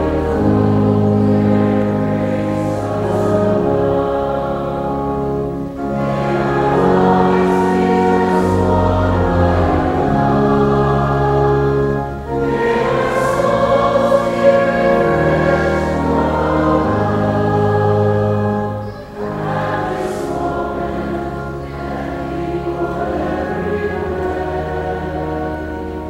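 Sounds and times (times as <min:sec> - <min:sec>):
choir singing: 0:00.0 - 0:26.0
pipe organ: 0:00.0 - 0:26.0.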